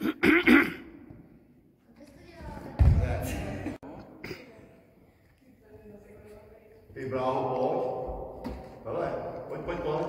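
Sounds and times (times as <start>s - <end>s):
person clearing throat: 0.0s - 1.0s.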